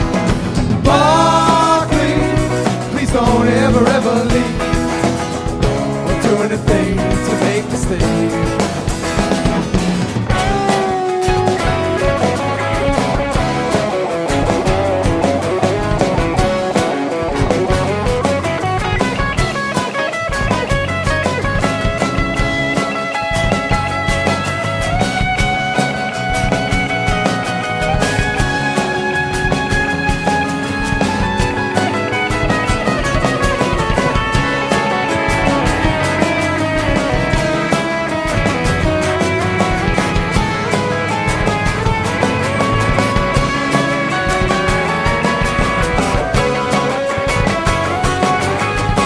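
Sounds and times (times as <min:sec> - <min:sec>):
drum and cymbal hits: 0:00.0 - 0:49.0
guitars: 0:00.0 - 0:49.0.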